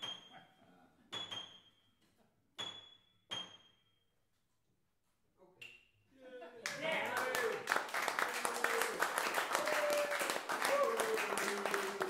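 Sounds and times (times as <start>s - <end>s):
audience applauding: 6.6s - 12.0s.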